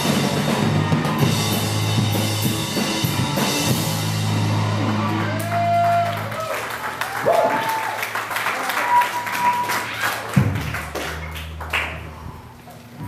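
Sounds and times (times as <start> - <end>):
crowd clapping and shouting: 4.9 - 12.1.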